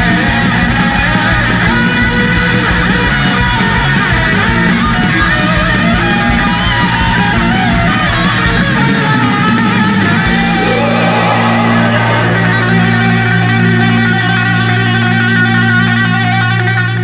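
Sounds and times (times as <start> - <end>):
drums keeping fast beat: 0.0 - 14.0
bass: 0.0 - 17.0
distorted electric guitars: 0.0 - 17.0
guitar melody: 0.0 - 17.0.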